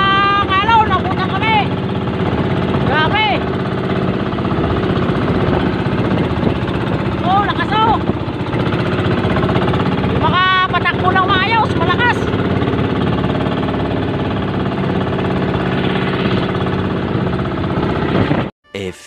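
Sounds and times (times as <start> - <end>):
boat engine running: 0.0 - 18.5
person calling out: 18.7 - 19.0.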